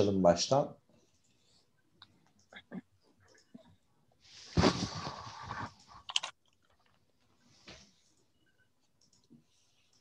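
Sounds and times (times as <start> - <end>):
crackly rustling near microphone: 4.3 - 6.1
computer mouse clicks: 9.0 - 10.0.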